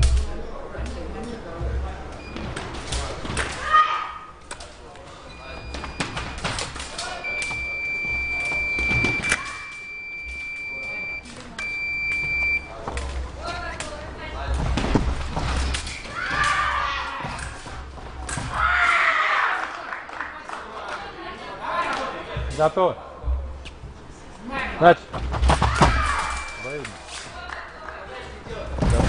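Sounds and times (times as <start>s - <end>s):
high electronic beep: 7.2s - 12.7s, 26.4s - 26.8s
knocks and thumps: 14.5s - 15.8s, 25.1s - 26.2s, 28.7s - 29.0s.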